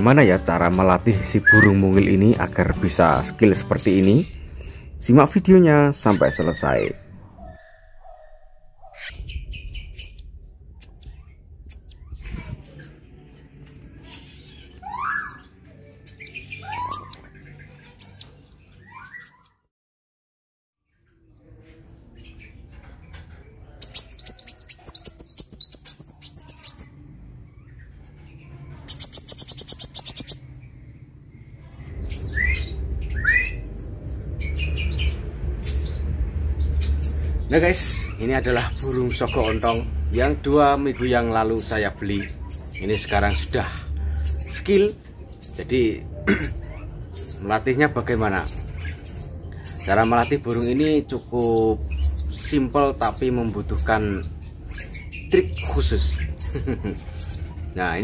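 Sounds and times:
birds chirping: 0.0 - 19.7, 20.8 - 58.0
rising whistled bird notes: 1.1 - 4.9, 14.1 - 15.5, 16.1 - 17.3, 32.0 - 36.0.

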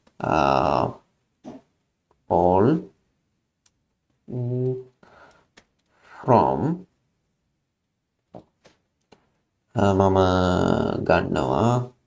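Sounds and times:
person saying uhh: 0.2 - 1.0, 4.3 - 5.0.

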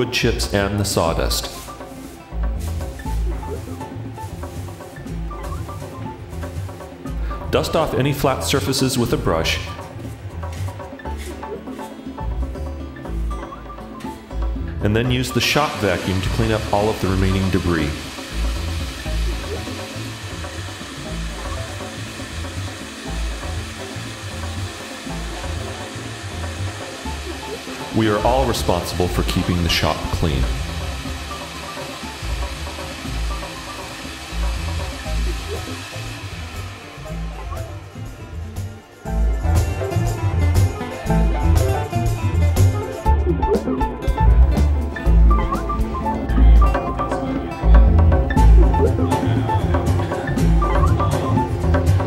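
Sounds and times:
shop vacuum sucking sawdust: 0.0 - 43.2, 44.8 - 52.0
background music with bass line: 0.0 - 52.0.

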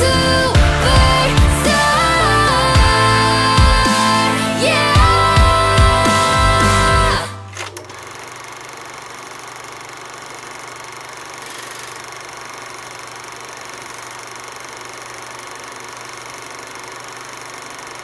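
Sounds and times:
film projector whirring: 7.4 - 18.0.

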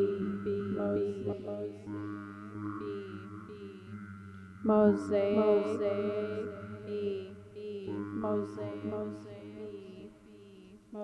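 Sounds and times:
looped voice drone: 0.0 - 4.0, 4.6 - 11.0
low microphone hum: 0.0 - 11.0.

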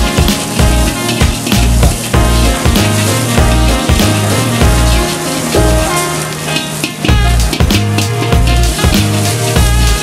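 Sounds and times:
background music: 0.0 - 10.0
food sizzling in a wok: 0.0 - 10.0
metal ladle stirring in wok: 0.0 - 10.0.

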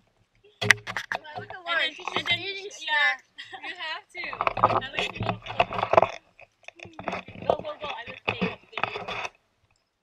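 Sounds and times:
rustling: 0.0 - 3.0, 3.6 - 10.0
women talking: 1.2 - 6.1, 6.8 - 9.2
women laughing: 3.4 - 4.0.

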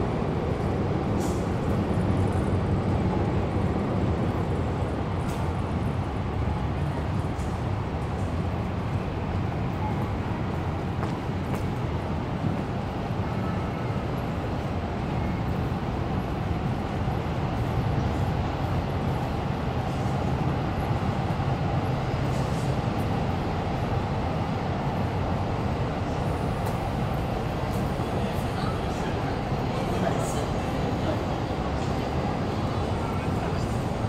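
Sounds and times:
low rumble of city vehicles: 0.0 - 34.0.

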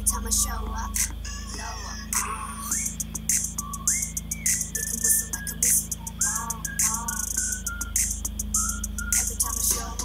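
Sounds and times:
sparse beat with hi-hat: 0.0 - 10.0
whistled melody with sliding notes: 0.9 - 10.0.

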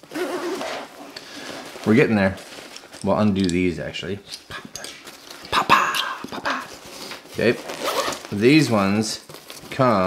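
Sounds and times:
fabric rustling: 0.0 - 3.5, 6.6 - 10.0.

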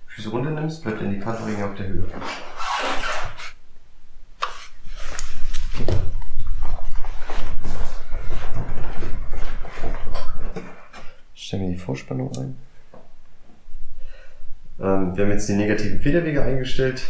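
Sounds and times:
rustling: 4.5 - 11.2.

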